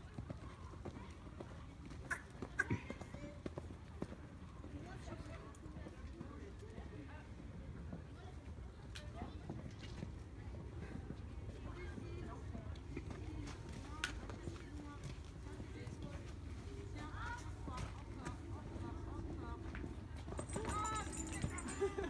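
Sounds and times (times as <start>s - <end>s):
people chattering: 0.0s - 22.0s
horse hoofbeats on sand: 0.1s - 22.0s.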